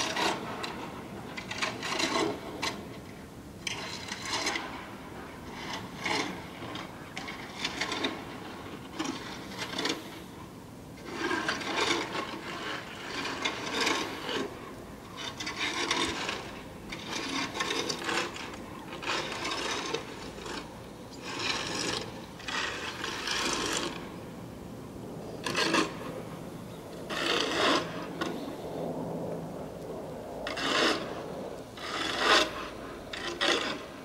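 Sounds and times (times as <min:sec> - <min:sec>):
shovel scraping snow: 0:11.0 - 0:14.5, 0:15.3 - 0:20.7, 0:21.3 - 0:24.2, 0:25.4 - 0:26.0, 0:27.0 - 0:28.5, 0:30.4 - 0:34.0.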